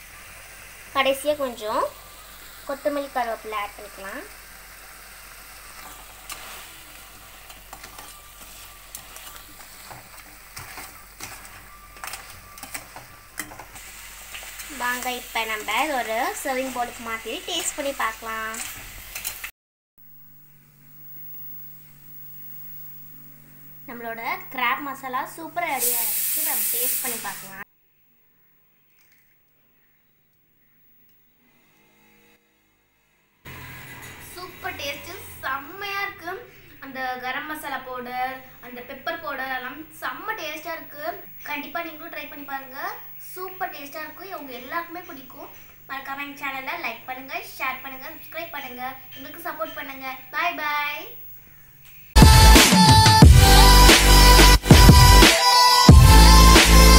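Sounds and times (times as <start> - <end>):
food sizzling in a pan: 0.0 - 19.5, 24.0 - 27.7
ladle scraping and clinking on pan: 7.5 - 13.8.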